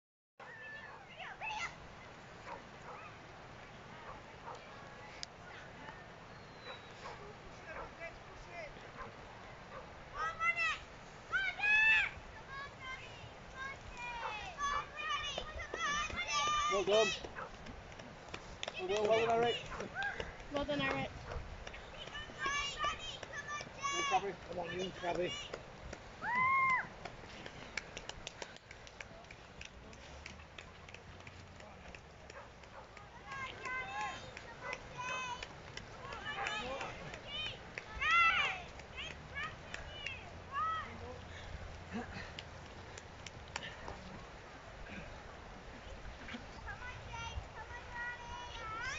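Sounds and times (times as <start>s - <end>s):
running footsteps on wet grass: 0.5s - 48.9s
spectators shouting encouragement: 10.2s - 17.3s, 26.2s - 27.0s, 33.0s - 41.0s.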